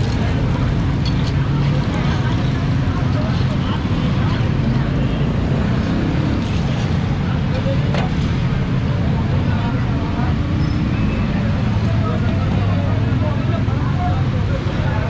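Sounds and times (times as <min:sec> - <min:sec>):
street noise rumble: 0:00.0 - 0:15.0.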